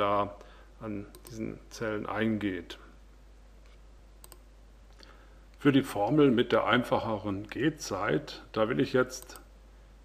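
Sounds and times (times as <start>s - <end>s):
faint low hum: 0.0s - 10.0s
computer mouse double-click: 4.2s - 4.4s.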